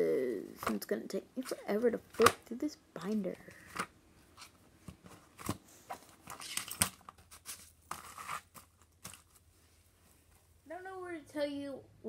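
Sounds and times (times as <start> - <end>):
paper pages rustling: 3.6 - 9.5.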